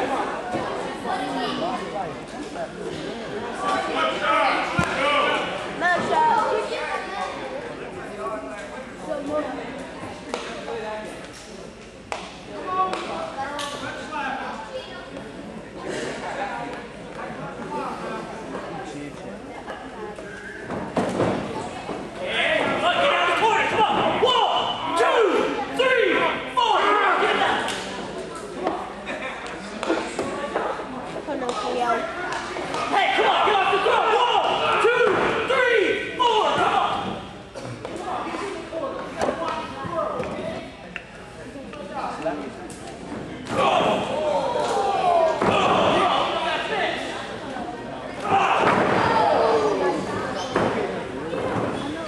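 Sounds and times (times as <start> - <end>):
spectators talking and calling out: 0.0 - 52.0
crowd shouting: 32.9 - 37.1, 48.2 - 50.0
wrestlers colliding thud: 48.2 - 49.6.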